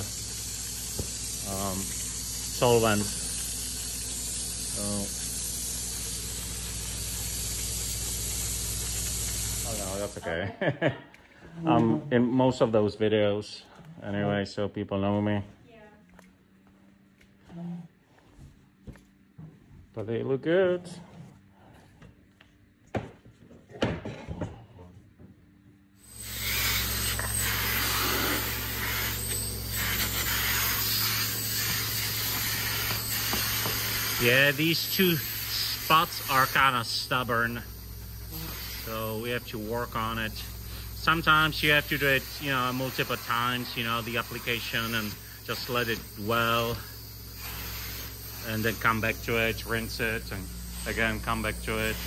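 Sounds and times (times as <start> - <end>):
extraction machine humming and hissing: 0.0 - 10.3, 26.0 - 52.0
vacuum running: 0.0 - 10.5, 26.0 - 52.0
wand sucking across wet fabric: 26.2 - 36.7.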